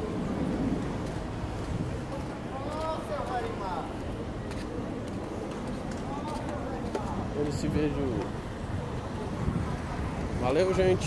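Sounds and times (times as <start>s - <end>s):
low rumble of traffic: 0.0s - 11.0s
people talking: 2.0s - 11.0s.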